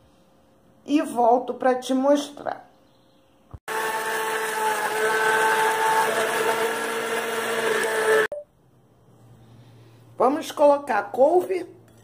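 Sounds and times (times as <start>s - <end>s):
blender motor whining: 3.7s - 8.3s.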